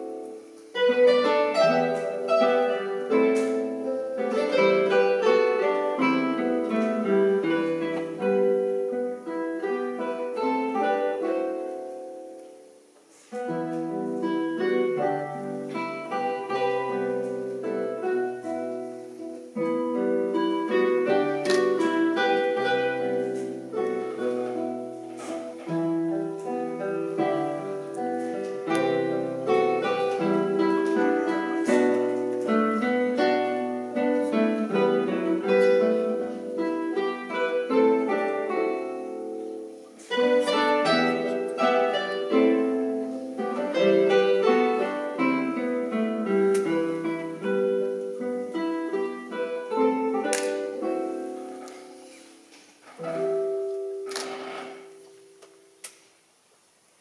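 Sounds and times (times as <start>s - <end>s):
classical guitars playing: 0.0s - 57.0s.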